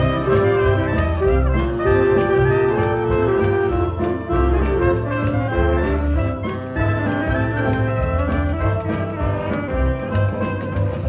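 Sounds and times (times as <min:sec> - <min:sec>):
banjo: 0:00.0 - 0:11.0
jazz band horns playing: 0:00.0 - 0:11.0.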